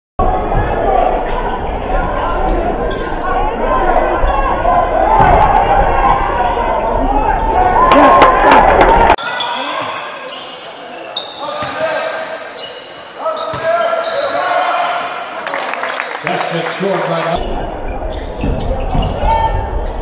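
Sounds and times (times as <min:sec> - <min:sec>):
spectators' voices: 0:00.2 - 0:20.0.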